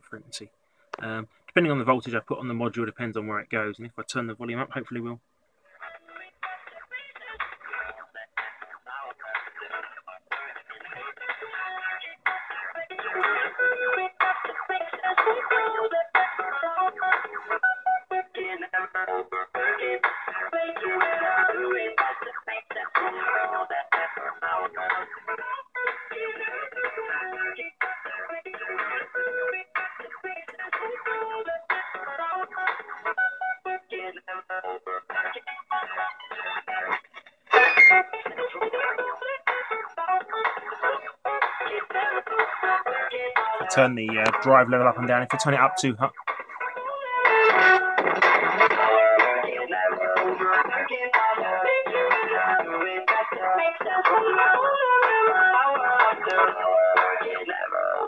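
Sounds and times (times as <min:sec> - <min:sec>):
dance music through radio speaker: 0:05.8 - 0:58.0.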